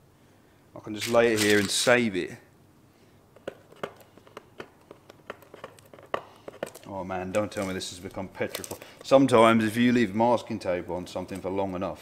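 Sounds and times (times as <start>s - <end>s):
paper and masking tape crinkling: 0.9s - 2.0s, 6.6s - 9.4s.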